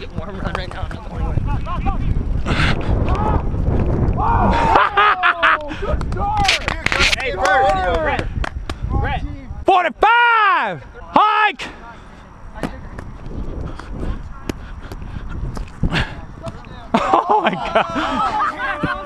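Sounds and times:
men shouting: 17.0s - 19.0s
long drawn-out yell: 17.1s - 19.0s.

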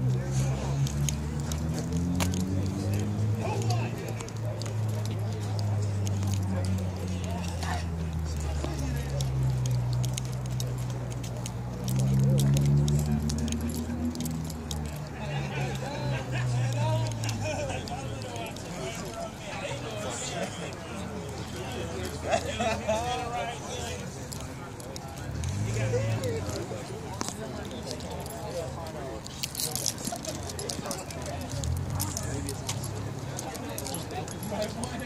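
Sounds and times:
car engine running at low revs: 0.0s - 18.5s.

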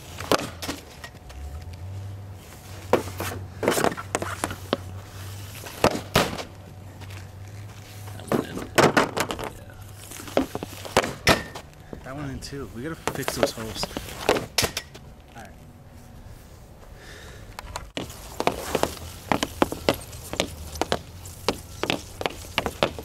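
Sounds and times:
puck striking net: 0.0s - 1.2s, 2.9s - 4.9s, 5.6s - 6.6s, 8.3s - 9.5s, 10.2s - 11.6s, 13.0s - 15.0s, 18.0s - 23.0s
hockey stick shooting cracks: 0.2s - 1.1s.

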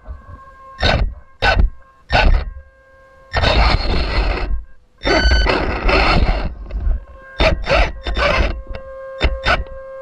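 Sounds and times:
thin steady whine: 0.0s - 10.0s
electric motor whirring: 0.8s - 10.0s.

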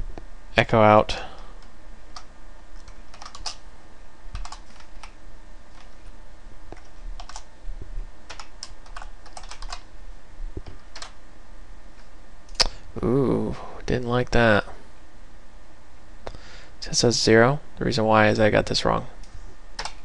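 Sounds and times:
typing on computer keyboard: 2.2s - 3.6s, 4.4s - 5.2s, 6.8s - 7.5s, 8.3s - 9.9s, 10.6s - 11.2s, 19.8s - 20.0s.

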